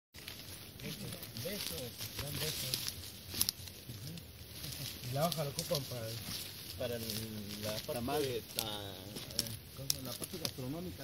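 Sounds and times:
footsteps through undergrowth: 0.2s - 11.0s
men talking: 0.6s - 11.0s.

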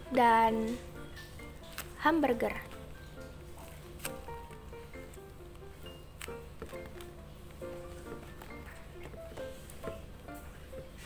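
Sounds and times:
soft background music: 0.0s - 11.0s
crinkly paper clicks: 1.2s - 2.8s, 3.6s - 9.9s.

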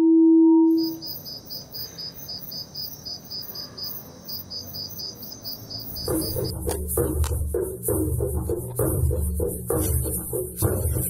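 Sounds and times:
insects chirping: 0.7s - 10.5s.

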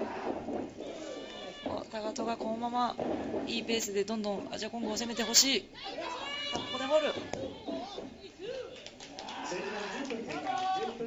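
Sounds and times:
wrestling crowd noise: 0.0s - 11.0s.

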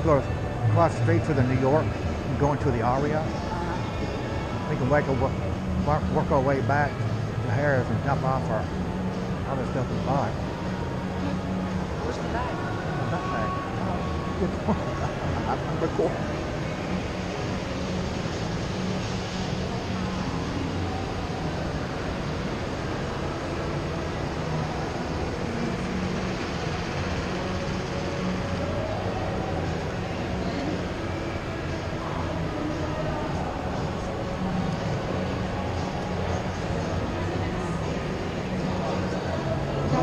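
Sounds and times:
faint indistinct voices: 0.0s - 40.0s.

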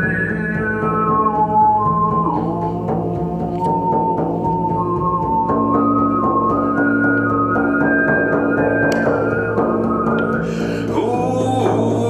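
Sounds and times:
frame drum beats: 0.0s - 12.0s
man overtone singing: 10.4s - 12.0s.

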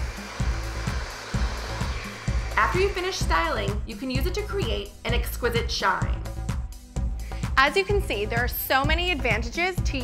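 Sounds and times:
hair dryer running: 0.0s - 5.1s
music with pulsing bass beat: 0.0s - 9.5s.

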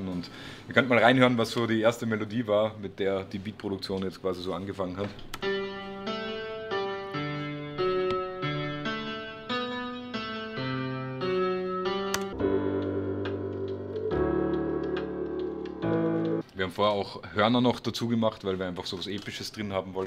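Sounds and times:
software piano melody: 5.4s - 16.5s
sustained chords over deep bass: 12.4s - 16.4s.

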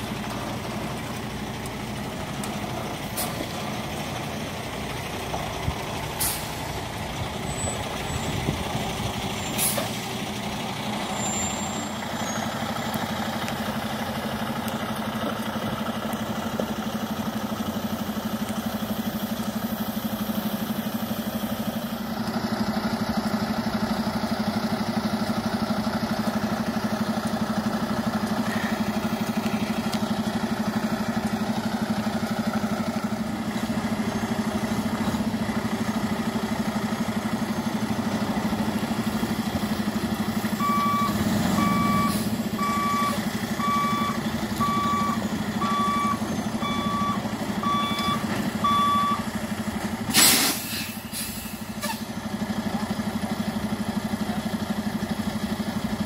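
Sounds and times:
truck diesel engine running: 0.0s - 56.0s
backup alarm beeping: 40.6s - 49.3s.

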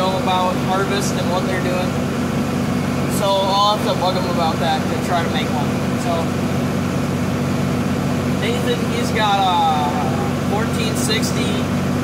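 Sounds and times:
tractor diesel engine drone: 0.0s - 12.0s.

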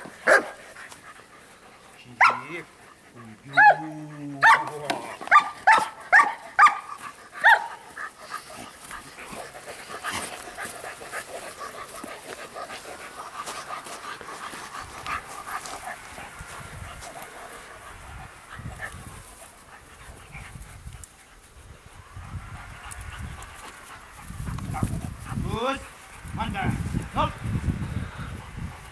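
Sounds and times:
dog panting: 0.0s - 27.1s
dog barking: 0.2s - 0.6s, 2.2s - 2.5s, 3.5s - 7.8s.

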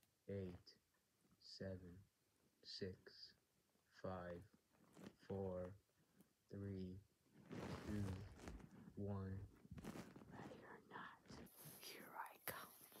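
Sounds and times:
person speaking quietly: 7.8s - 8.3s, 9.0s - 9.5s, 10.3s - 13.0s
person whispering: 10.3s - 13.0s.

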